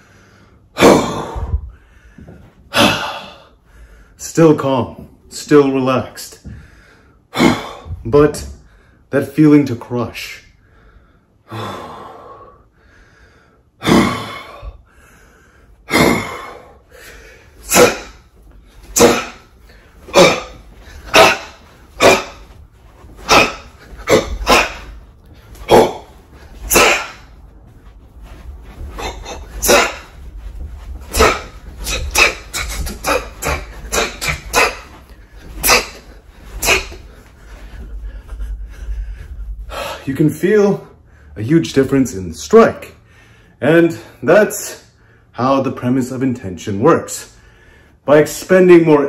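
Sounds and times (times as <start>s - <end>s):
sharp forceful exhalations: 13.1s - 40.0s.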